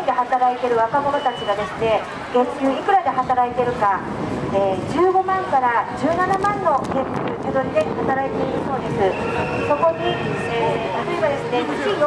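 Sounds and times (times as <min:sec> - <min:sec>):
woman speaking over loudspeaker: 0:00.0 - 0:12.0.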